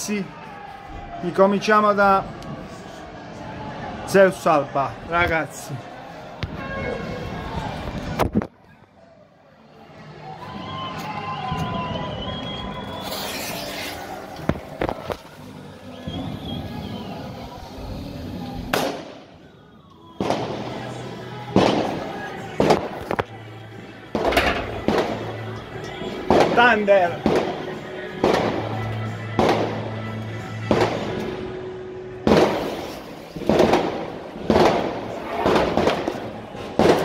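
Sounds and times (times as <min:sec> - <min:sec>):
firecrackers banging: 0:18.6 - 0:19.4, 0:20.2 - 0:23.2, 0:24.1 - 0:25.5, 0:26.2 - 0:30.0, 0:30.6 - 0:31.5, 0:32.2 - 0:37.0.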